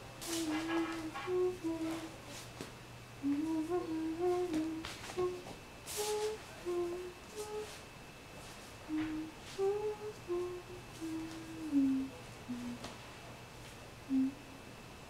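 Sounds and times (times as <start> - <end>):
person humming a tune: 0.0 - 2.4, 3.2 - 7.8, 8.8 - 13.0, 14.1 - 14.7.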